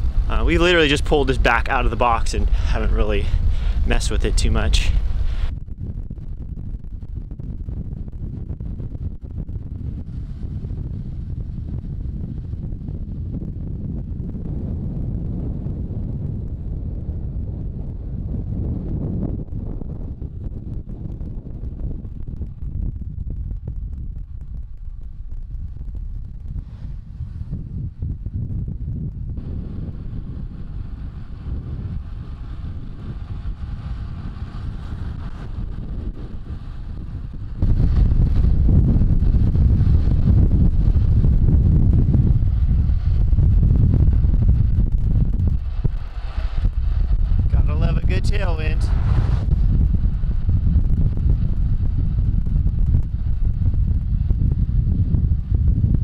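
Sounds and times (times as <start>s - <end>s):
wind rushing over microphone: 0.0s - 56.0s.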